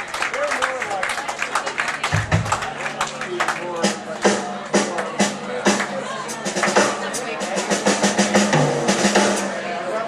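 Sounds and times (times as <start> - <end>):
snare drum rolls: 3.8 - 9.6.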